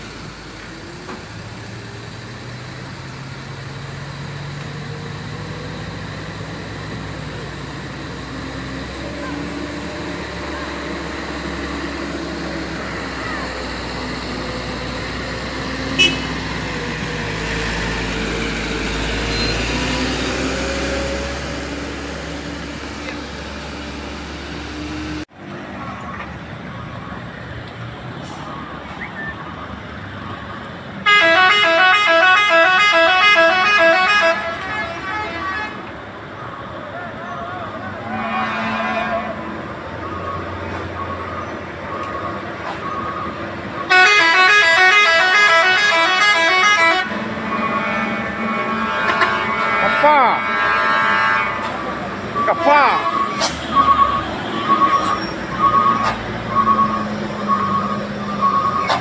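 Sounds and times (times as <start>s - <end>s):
heavy truck engines running: 0.0s - 59.0s
truck horns playing a tune: 15.8s - 16.9s, 31.0s - 36.0s, 37.8s - 39.6s, 43.8s - 57.1s
short beeps: 52.3s - 58.9s.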